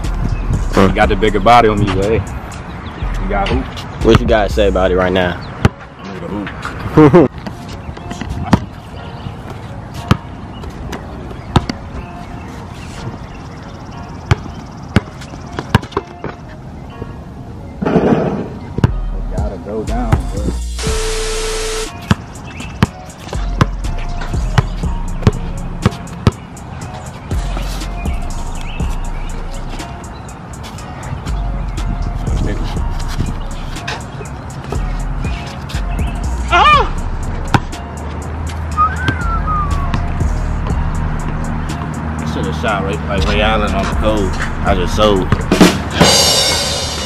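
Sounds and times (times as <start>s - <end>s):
background music with deep bass: 0.0s - 16.2s, 18.8s - 47.0s
basketball bouncing on asphalt: 5.6s - 5.8s, 7.4s - 8.8s, 9.5s - 11.8s, 14.2s - 16.4s, 21.9s - 27.7s, 37.4s - 37.9s.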